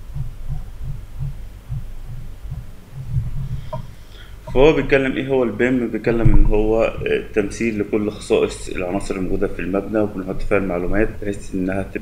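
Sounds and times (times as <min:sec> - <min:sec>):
pulsing low hum: 0:00.0 - 0:12.0.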